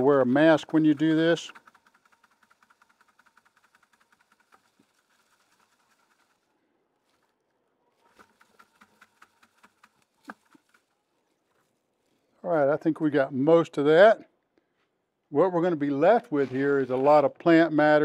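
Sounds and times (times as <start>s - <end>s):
seed heads rustling in plastic bucket: 0.0s - 12.5s.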